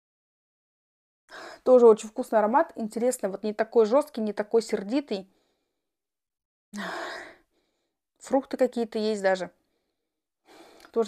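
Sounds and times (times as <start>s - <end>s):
woman sighing: 6.8s - 7.4s.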